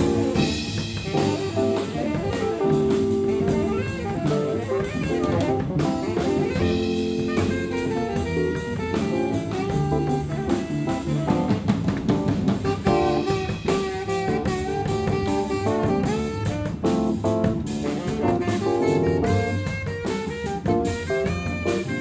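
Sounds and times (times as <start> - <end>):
drumsticks on cymbals and snare: 0.0 - 22.0
keyboard: 0.0 - 22.0
saxophone: 0.0 - 22.0
upright bass: 0.0 - 22.0.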